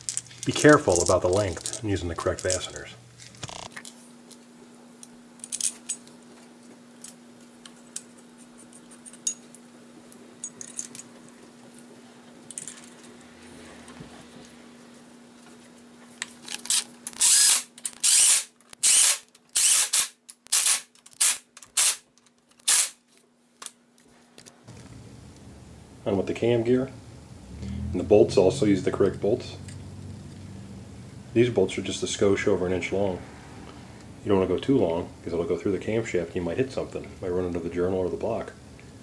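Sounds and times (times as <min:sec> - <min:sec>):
ratchet clicking: 0:16.7 - 0:22.0.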